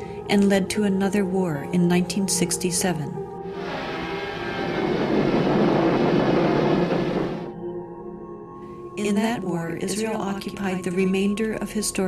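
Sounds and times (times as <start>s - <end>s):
low music drone: 0.0s - 12.0s
aircraft roaring: 3.4s - 7.5s.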